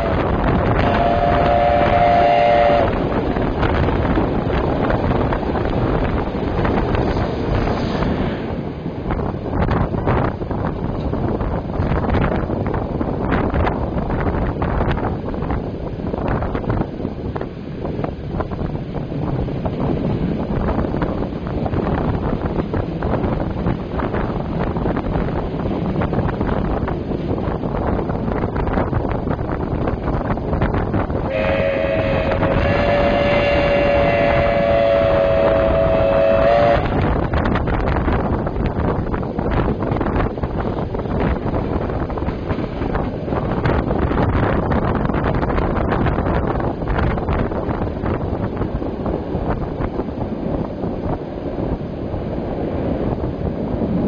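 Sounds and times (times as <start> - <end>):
two-note train horn: 0.0 - 3.0, 31.3 - 37.1
train running along tracks: 0.0 - 54.0
wind buffeting microphone: 0.0 - 54.0.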